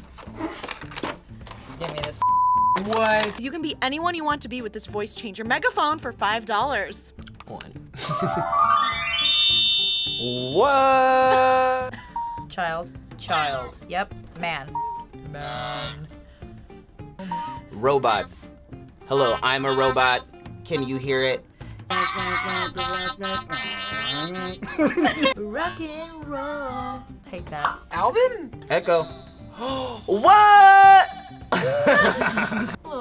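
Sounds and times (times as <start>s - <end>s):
buzzy electronic megaphone tone: 8.3s - 10.8s
robotic electronic voice: 10.2s - 10.6s.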